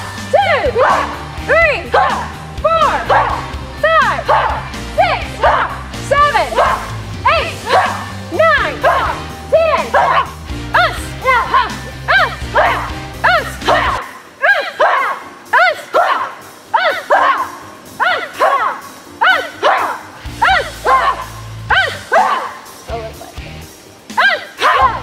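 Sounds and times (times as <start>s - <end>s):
children shouting kiai cries: 9.9s - 22.6s, 24.2s - 25.0s.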